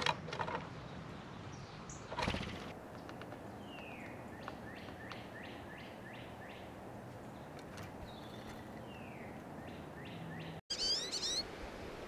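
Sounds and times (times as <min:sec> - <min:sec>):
faint outdoor background: 0:00.0 - 0:12.0
bird whistling song: 0:08.1 - 0:11.5.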